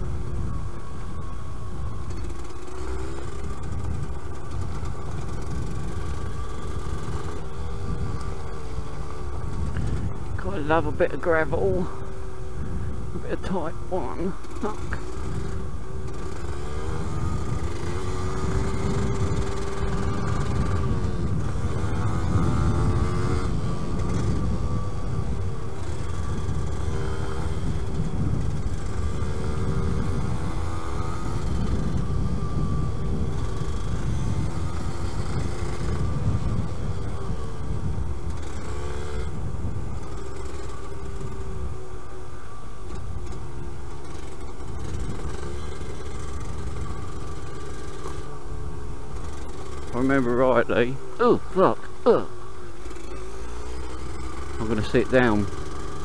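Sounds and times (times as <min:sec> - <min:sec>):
two-stroke motorcycle engine revving: 0:00.0 - 0:56.0
wind rumble: 0:00.0 - 0:56.0.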